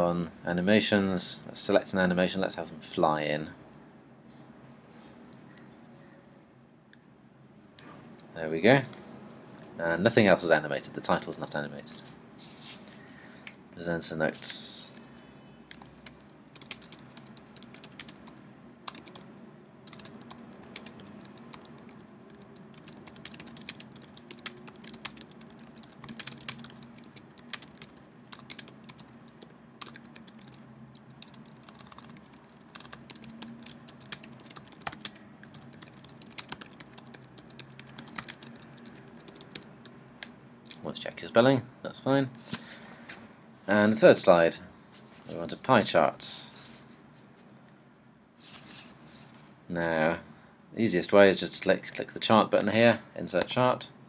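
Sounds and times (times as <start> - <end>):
typing on computer keyboard: 15.7 - 19.3, 19.9 - 40.3.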